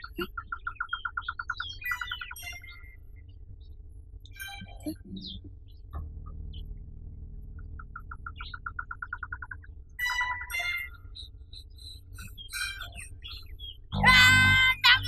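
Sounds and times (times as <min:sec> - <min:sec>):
birds chirping: 0:00.0 - 0:15.0
steady low hum: 0:00.0 - 0:15.0.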